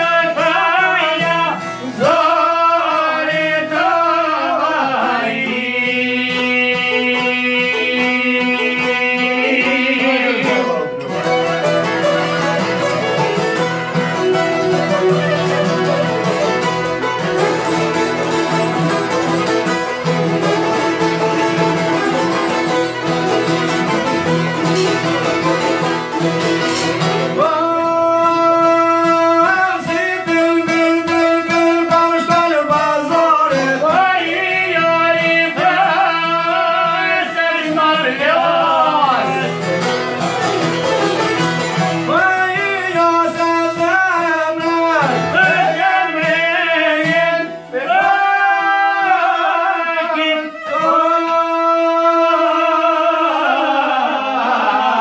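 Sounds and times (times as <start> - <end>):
man singing long held lines: 0.0 - 11.2, 27.3 - 40.0, 41.9 - 55.0
folk strings playing: 0.0 - 55.0.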